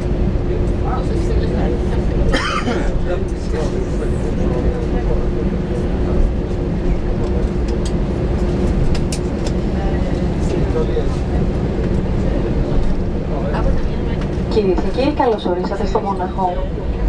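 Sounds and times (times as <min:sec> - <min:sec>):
faint passenger chatter: 0:00.0 - 0:17.0
jet airliner cabin rumble: 0:00.0 - 0:17.0
steady hum: 0:00.0 - 0:17.0.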